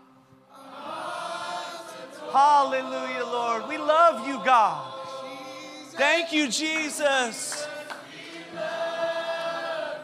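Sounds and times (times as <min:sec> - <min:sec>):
congregation singing a cappella: 0:00.0 - 0:10.0.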